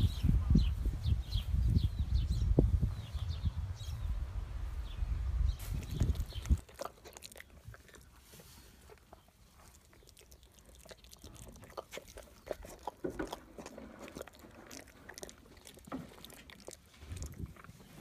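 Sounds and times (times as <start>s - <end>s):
foal suckling: 5.8s - 18.0s.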